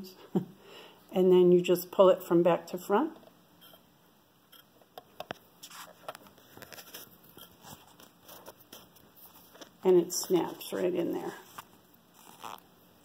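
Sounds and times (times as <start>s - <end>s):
light scratchy rustling: 5.6s - 12.6s.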